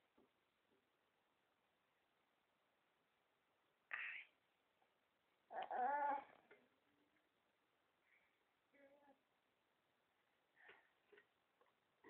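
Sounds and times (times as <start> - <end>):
baby whining: 5.5 - 6.4.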